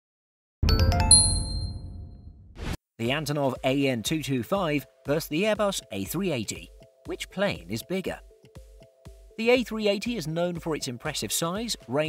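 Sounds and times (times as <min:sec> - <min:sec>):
bright plinking notes: 0:00.6 - 0:02.0
ringing chime: 0:00.7 - 0:02.1.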